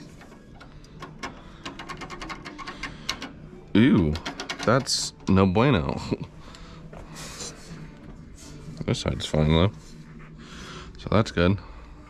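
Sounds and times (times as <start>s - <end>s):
faint metal clicks and ticks: 0.0s - 3.4s.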